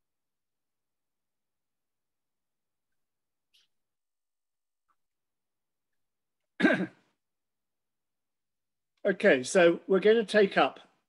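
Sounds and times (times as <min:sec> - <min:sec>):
person clearing throat: 0:06.6 - 0:07.2.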